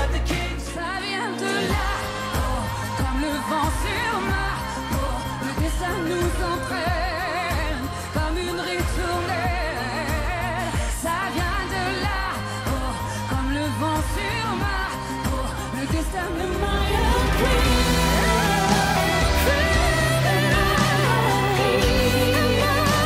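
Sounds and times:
band with pulsing bass: 0.0s - 23.0s
woman singing pop ballad: 0.0s - 23.0s.

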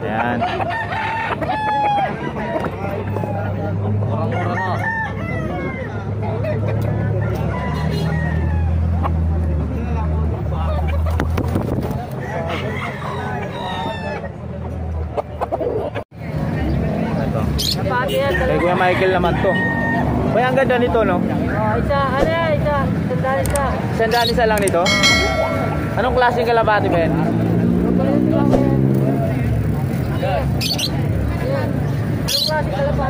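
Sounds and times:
voices: 0.0s - 11.2s, 12.0s - 33.0s
roosters crowing: 0.4s - 3.4s, 4.2s - 6.0s, 7.2s - 9.0s, 12.2s - 14.4s, 18.2s - 20.5s
chickens clucking: 12.2s - 16.0s.

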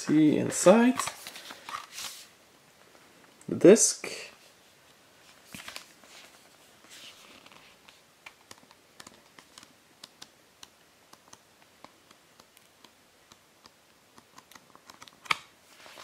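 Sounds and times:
booklet pages turning: 0.0s - 2.3s, 5.2s - 10.3s, 14.2s - 16.0s.

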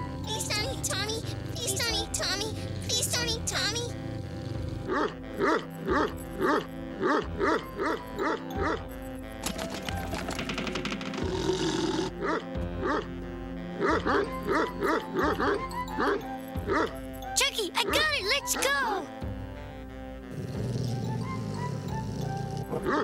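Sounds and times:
background music: 0.0s - 23.0s
large dog barking: 4.2s - 8.8s, 12.1s - 13.1s.

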